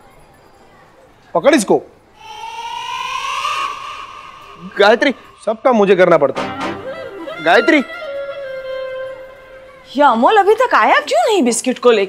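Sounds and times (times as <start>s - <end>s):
synthetic tone gliding upward: 2.2s - 6.2s.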